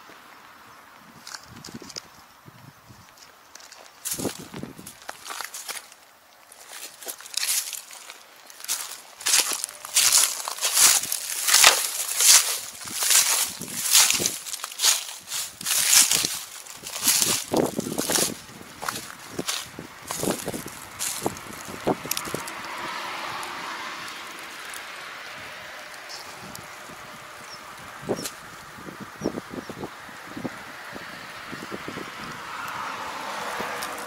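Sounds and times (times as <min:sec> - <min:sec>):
footsteps on dry leaves: 0:03.0 - 0:28.8, 0:32.5 - 0:34.0.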